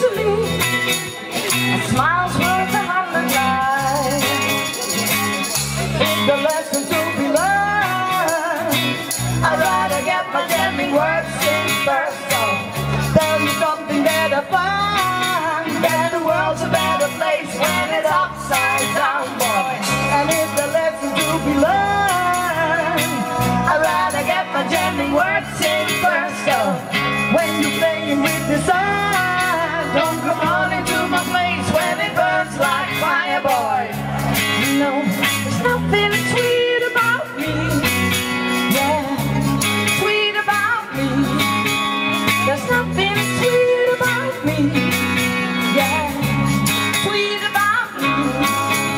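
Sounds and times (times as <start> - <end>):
bass guitar: 0.0 - 48.9
drums keeping a steady beat: 0.0 - 48.9
electric guitar: 0.0 - 48.9
voices singing: 0.0 - 48.9
female vocals: 1.7 - 4.5, 6.2 - 34.0, 34.6 - 48.9.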